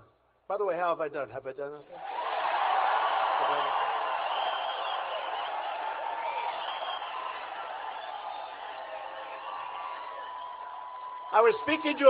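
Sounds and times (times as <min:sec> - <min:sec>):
crowd cheering and applauding: 0:02.0 - 0:12.0.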